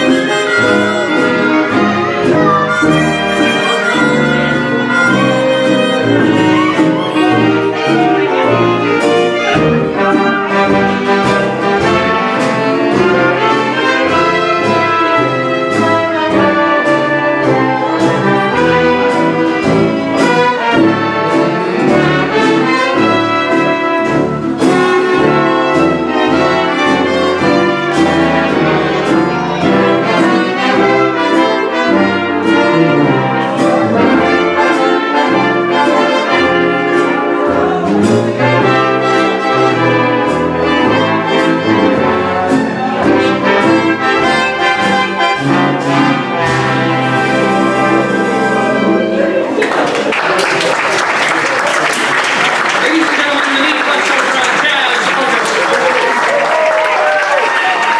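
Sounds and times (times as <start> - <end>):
trumpets and trombones: 0.0 - 49.6
dance orchestra playing foxtrot: 0.0 - 49.7, 51.8 - 57.9.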